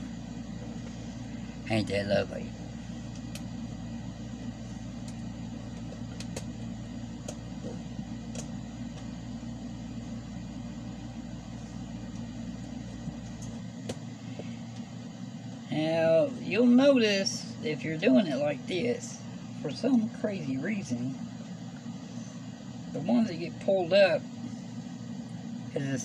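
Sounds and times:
low background hum: 0.0s - 26.0s.

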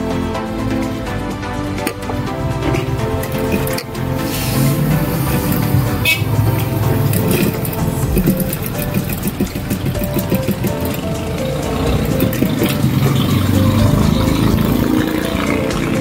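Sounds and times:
background music: 0.0s - 16.0s
sewing machine running: 4.7s - 16.0s.

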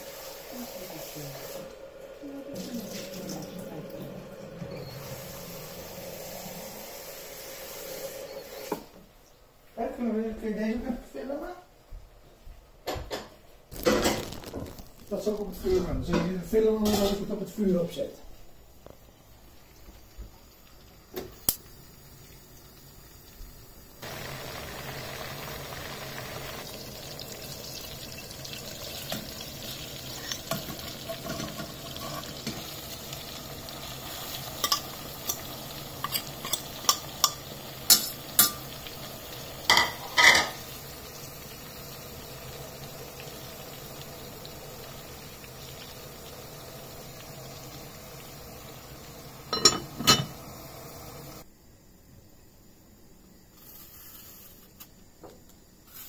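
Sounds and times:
food sizzling in a pan: 0.0s - 9.0s, 13.1s - 51.5s, 53.3s - 54.9s, 55.8s - 56.0s.

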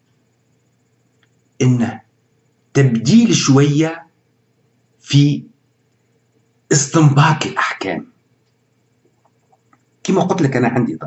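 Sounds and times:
man's voice: 1.6s - 2.0s, 2.8s - 4.0s, 5.1s - 5.4s, 6.7s - 8.0s, 10.1s - 11.0s.

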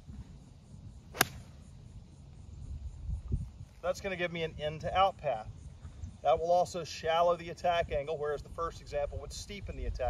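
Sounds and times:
golf club swish: 1.1s - 1.5s
golf club striking ball: 1.1s - 1.6s.

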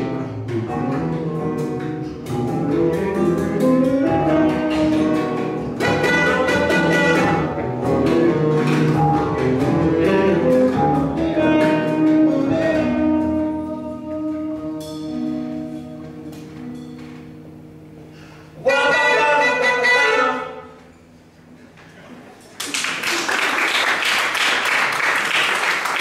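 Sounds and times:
small jazz band playing: 0.0s - 21.7s
loud final band chord: 0.1s - 17.1s.

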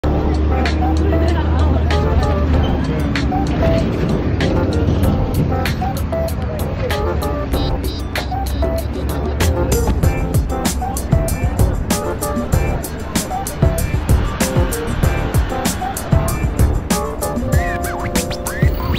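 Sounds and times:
background music with steady beat: 0.0s - 18.9s.

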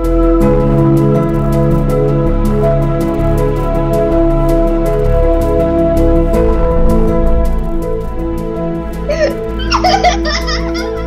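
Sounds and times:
soft background music: 0.0s - 11.0s
girl giggling: 9.1s - 11.0s.

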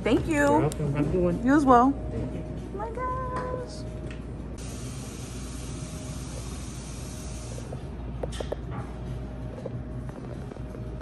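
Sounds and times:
low cafe hum: 0.0s - 11.0s.

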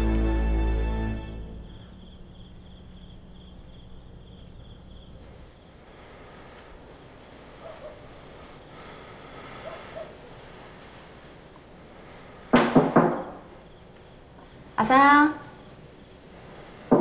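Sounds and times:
insects chirping in a trill: 1.0s - 17.0s.

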